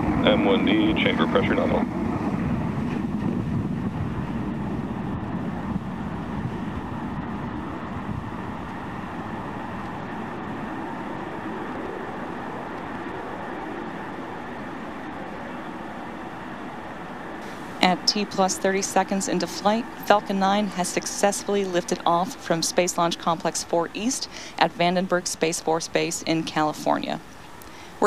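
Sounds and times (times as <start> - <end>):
rocket engines roaring: 0.0 - 28.0.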